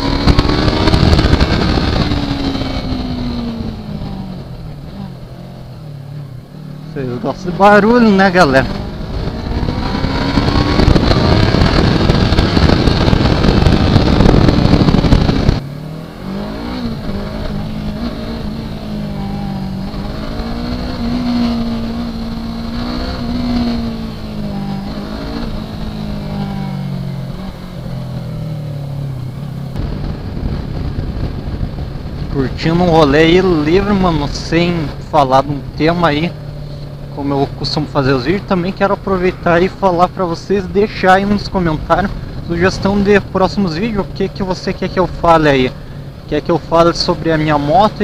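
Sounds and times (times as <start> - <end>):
motorcycle engine revving: 0.0 - 48.0.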